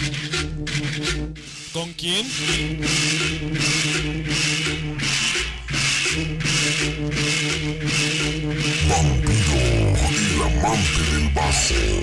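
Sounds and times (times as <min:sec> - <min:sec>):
pulsing bass line: 0:00.0 - 0:12.0
scraper rhythm: 0:00.0 - 0:12.0.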